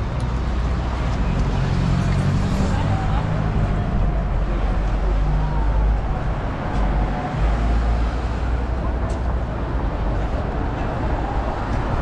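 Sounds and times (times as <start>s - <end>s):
vehicle engines rumbling past: 0.0s - 12.0s
people's voices: 2.4s - 7.9s.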